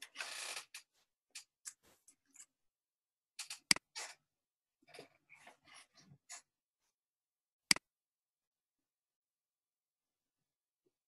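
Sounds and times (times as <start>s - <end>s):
computer mouse clicks: 3.4s - 4.1s.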